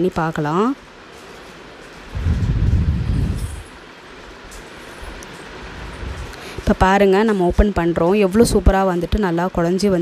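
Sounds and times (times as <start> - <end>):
faint steady hiss: 0.0 - 10.0
low rumble: 2.1 - 3.8.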